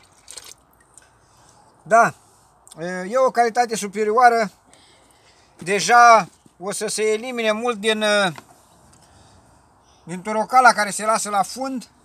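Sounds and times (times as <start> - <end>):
wine splashing into plastic bucket: 0.0 - 1.0.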